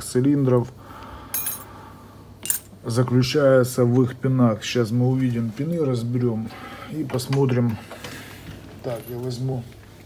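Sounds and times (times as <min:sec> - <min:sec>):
metal parts clinking: 0:01.4 - 0:01.7, 0:02.4 - 0:02.7
steel parts rustling: 0:01.4 - 0:01.7.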